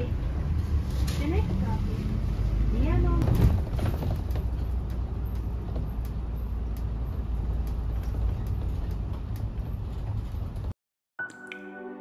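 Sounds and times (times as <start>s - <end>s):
bus engine and road rumble: 0.0s - 10.8s.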